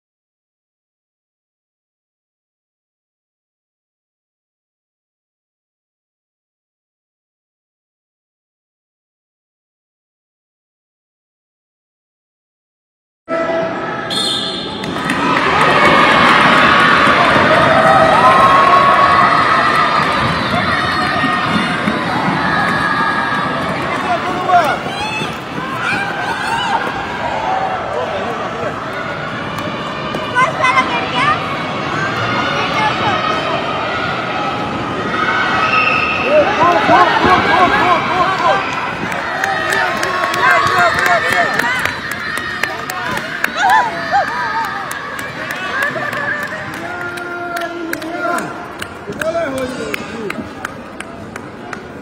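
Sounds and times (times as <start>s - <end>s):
crowd cheering: 13.6s - 52.0s
children shouting: 14.9s - 47.7s.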